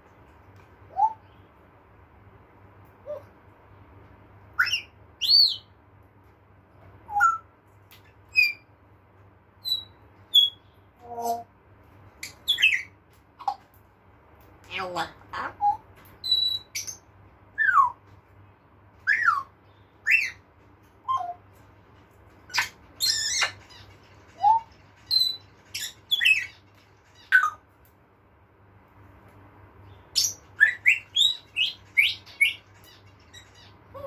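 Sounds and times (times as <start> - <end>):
parrot whistling and calling: 0.9 - 1.2, 4.6 - 5.7, 7.1 - 7.5, 12.2 - 12.9, 15.6 - 17.0, 17.6 - 18.0, 19.0 - 20.4, 21.1 - 21.4, 30.2 - 32.6.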